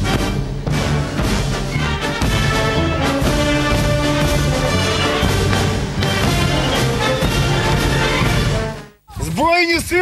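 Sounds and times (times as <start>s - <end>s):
music with held notes: 0.0s - 9.0s.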